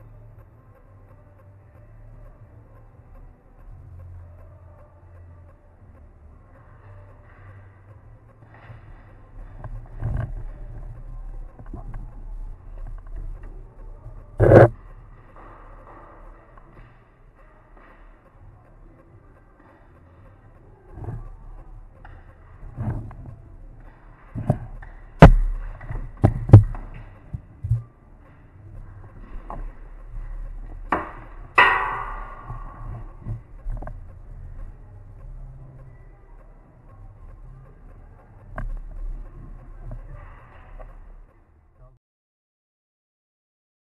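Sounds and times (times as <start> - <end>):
metallic ring: 31.0 - 33.4.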